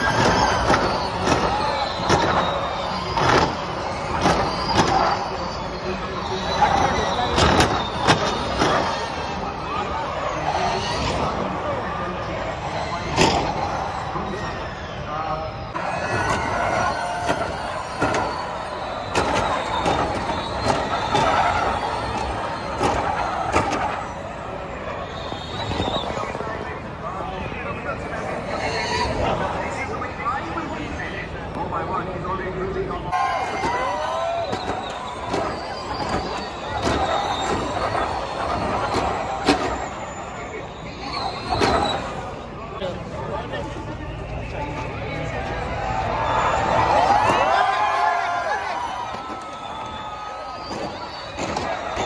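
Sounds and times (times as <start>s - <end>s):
tyre noise rushing: 0.0s - 9.5s, 15.8s - 26.5s, 33.2s - 42.3s, 44.2s - 52.0s
electric race car whine: 0.0s - 27.3s
spectators chatter: 0.0s - 52.0s.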